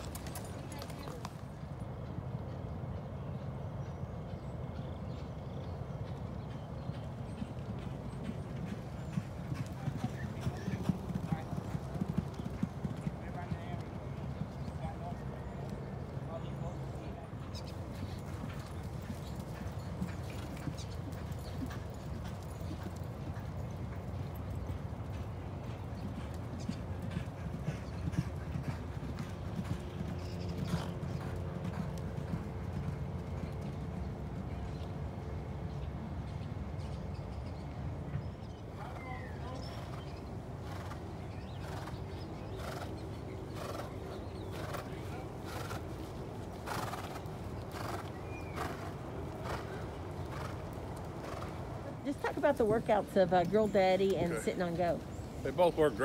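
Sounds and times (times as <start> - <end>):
hooves clopping on dirt: 0.0 - 56.0
low outdoor rumble: 0.0 - 56.0.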